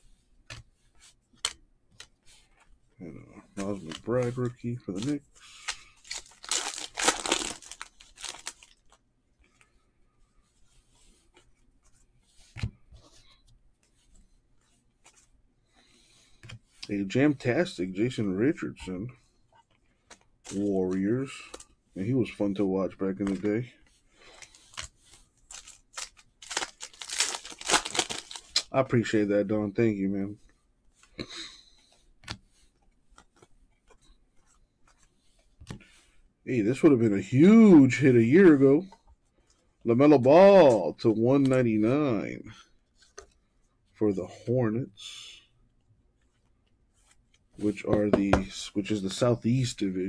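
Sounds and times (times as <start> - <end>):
cards sliding on cards: 3.5 - 9.8, 10.4 - 16.9, 19.1 - 28.7, 30.4 - 36.2, 42.6 - 43.4
card thump: 47.9 - 48.5.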